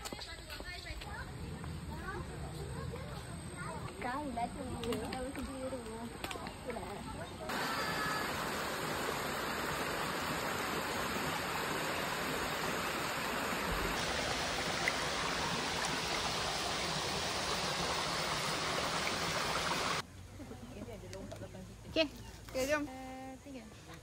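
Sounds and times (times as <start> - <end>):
stream water over stones: 7.5 - 20.0.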